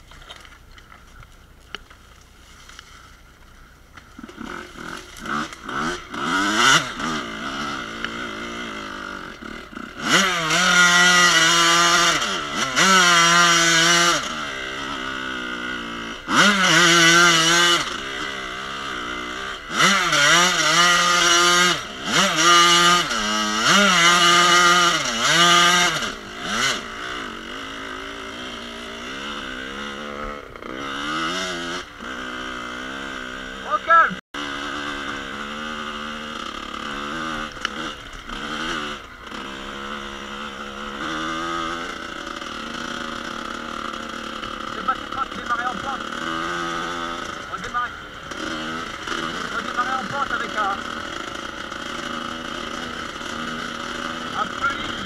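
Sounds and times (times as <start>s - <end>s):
motorcycle engine revving: 2.6s - 55.0s.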